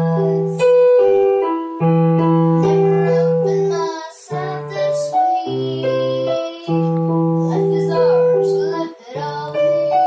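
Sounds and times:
electronic keyboard playing: 0:00.0 - 0:10.0
girl singing: 0:00.0 - 0:10.0.

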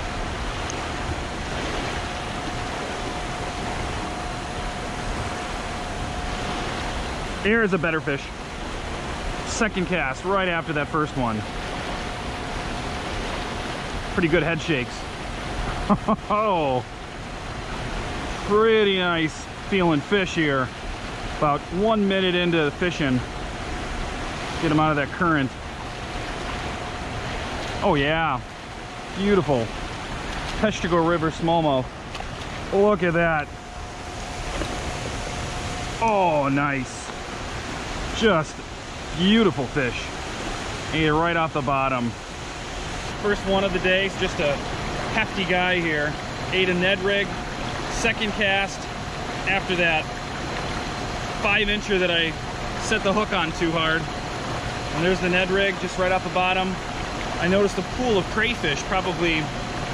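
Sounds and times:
faint steady tone: 0:00.0 - 0:59.9
river water rushing: 0:00.0 - 0:59.9.

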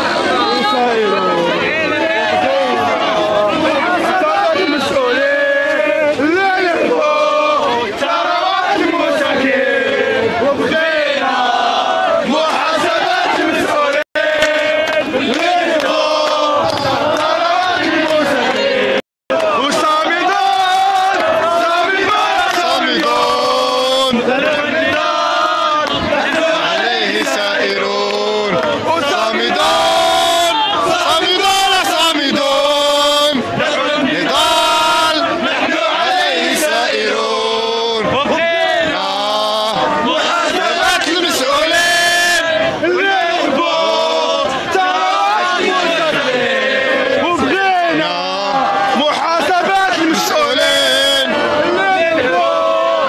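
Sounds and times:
crowd chanting and shouting: 0:00.0 - 0:53.0.

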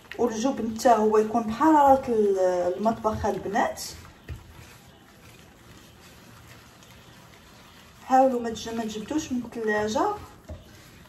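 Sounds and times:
wet squishing of butter mixing: 0:00.0 - 0:11.0.

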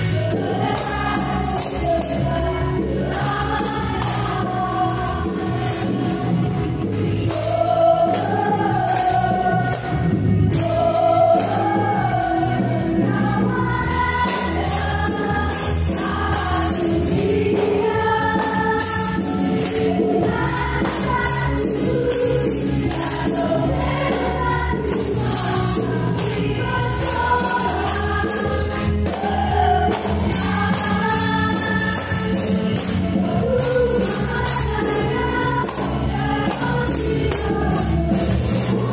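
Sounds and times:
choir-like synth sound: 0:00.0 - 0:38.9
people singing: 0:00.0 - 0:38.9
stage piano playing held chords: 0:00.0 - 0:38.9.

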